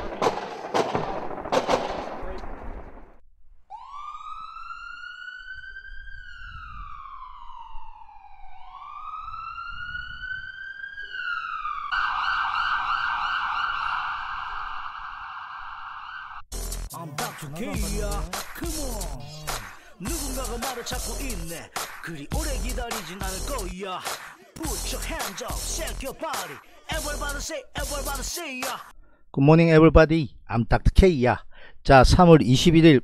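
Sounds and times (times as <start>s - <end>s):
sharp bangs: 0.0s - 3.2s
siren wailing and yelping: 3.7s - 16.4s.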